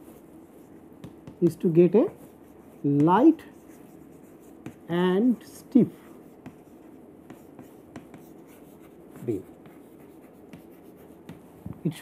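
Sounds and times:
chalk scratching on chalkboard: 0.0 - 11.6.

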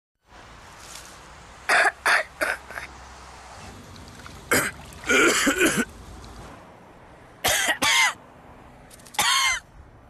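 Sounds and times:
outdoor background hiss: 0.2 - 10.0
person coughing: 4.5 - 5.9, 7.4 - 8.2.

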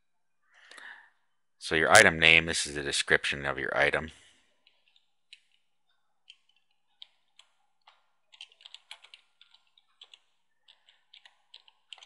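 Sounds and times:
faint keyboard typing: 4.5 - 12.0.

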